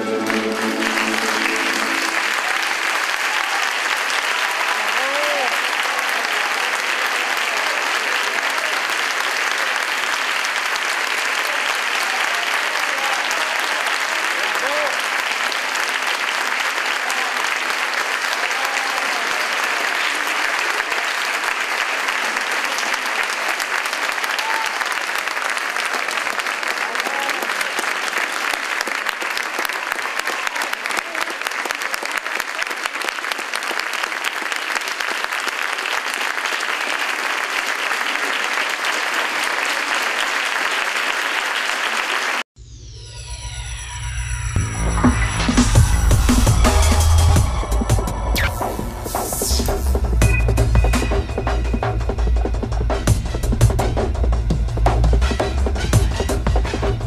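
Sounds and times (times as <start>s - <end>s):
mandolin and guitar orchestra: 0.0s - 3.0s
audience applauding: 0.0s - 42.5s, 45.0s - 50.0s.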